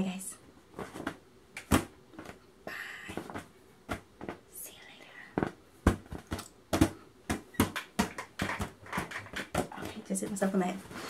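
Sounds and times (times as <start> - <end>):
hand slapping beach ball: 0.8 - 2.4, 3.0 - 4.4, 5.4 - 10.5.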